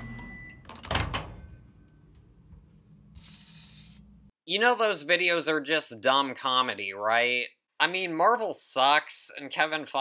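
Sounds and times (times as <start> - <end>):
short beep: 0.0 - 0.6
microwave oven humming: 0.0 - 2.7.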